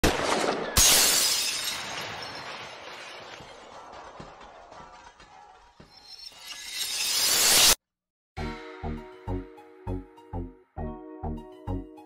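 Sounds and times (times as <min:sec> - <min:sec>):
glass shattering crash: 0:00.2 - 0:03.8, 0:05.9 - 0:07.8.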